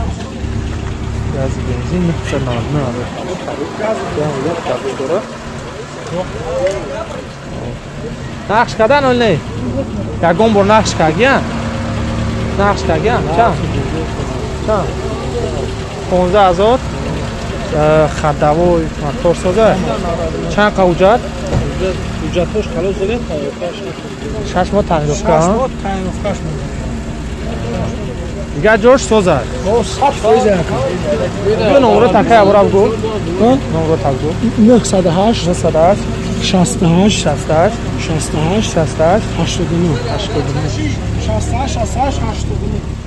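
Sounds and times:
car engine idling: 0.0 - 43.0
men talking: 0.0 - 43.0.

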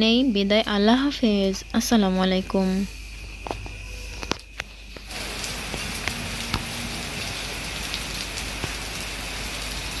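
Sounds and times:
steady rain hiss: 0.0 - 10.0
raindrops tapping: 3.3 - 10.0.

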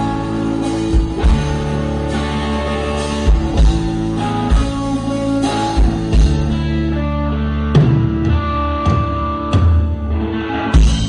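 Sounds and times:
rock band playing: 0.0 - 11.0.

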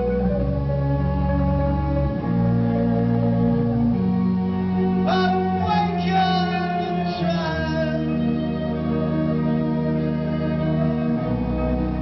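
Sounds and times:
high melodic line: 0.0 - 12.0.

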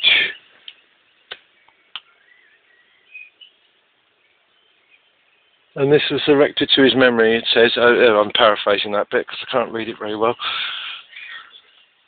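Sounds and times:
faint bird whistles: 0.0 - 0.5, 2.0 - 3.6, 11.1 - 11.8.

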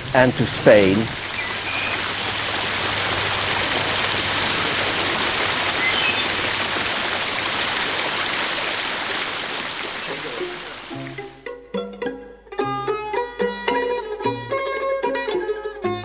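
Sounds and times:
fountain jets splashing: 0.0 - 11.4.

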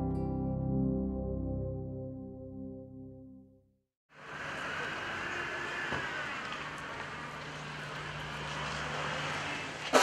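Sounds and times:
outdoor background noise: 4.1 - 10.0.

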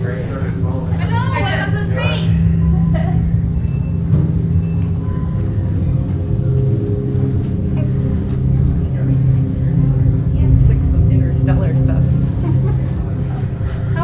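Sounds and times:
ambient music drone: 0.0 - 14.0
long held tones: 1.0 - 14.0.

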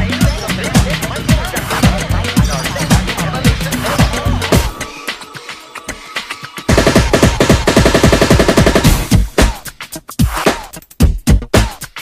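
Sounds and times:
music soundtrack: 0.0 - 12.0
rapid sharp percussive hits: 0.0 - 12.0.

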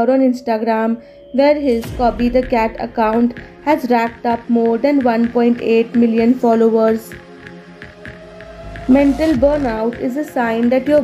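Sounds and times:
quiet background music: 0.0 - 11.0
low hum: 0.6 - 5.2
deep low rumble: 1.1 - 4.4.

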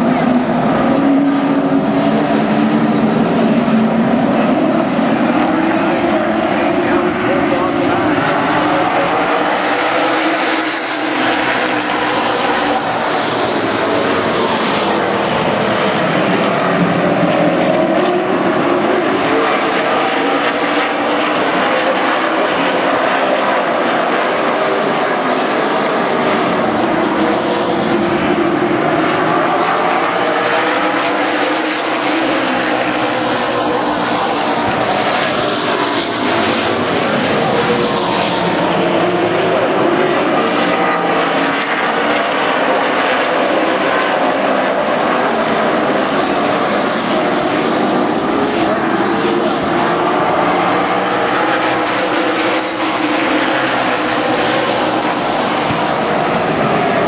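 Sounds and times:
race car engines droning: 0.0 - 57.0.

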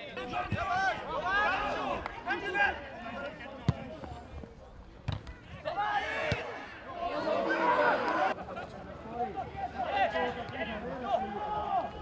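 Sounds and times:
players shouting: 0.0 - 3.4, 5.4 - 8.4, 9.3 - 12.0.

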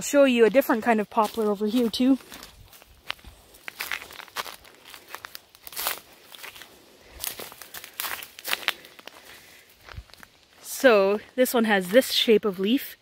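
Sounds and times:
footsteps through brush: 0.0 - 12.7.

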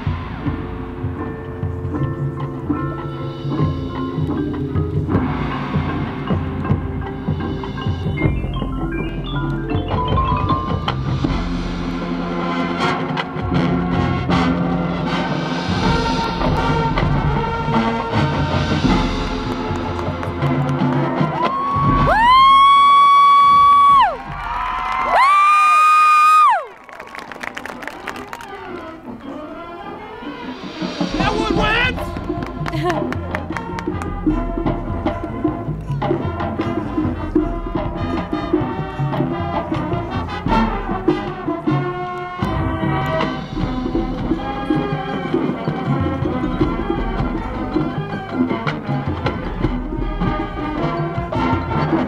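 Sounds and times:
mallet percussion: 0.0 - 22.5, 29.1 - 52.0
timpani: 0.0 - 25.3, 28.3 - 52.0
marching band playing: 0.0 - 52.0.

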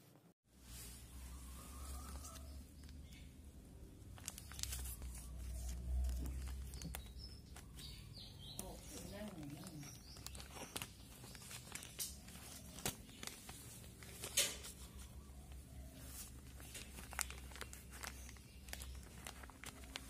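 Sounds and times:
plastic bag crinkling and tearing: 4.0 - 8.0, 8.6 - 15.3, 16.0 - 20.0.

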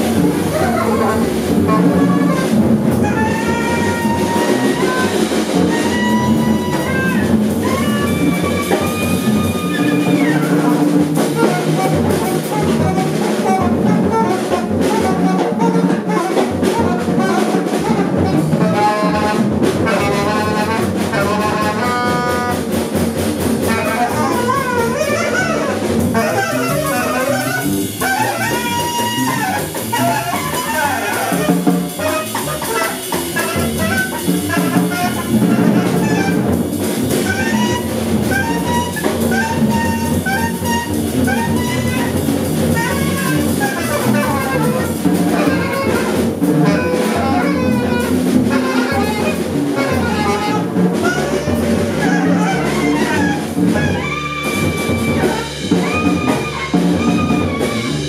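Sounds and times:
busy drumming with cymbals: 0.0 - 58.0
double bass: 0.0 - 58.0
saxophone sliding notes: 0.0 - 58.0.

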